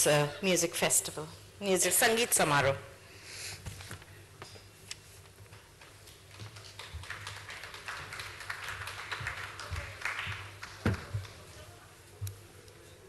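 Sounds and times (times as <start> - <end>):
audience applause: 6.3 - 11.6.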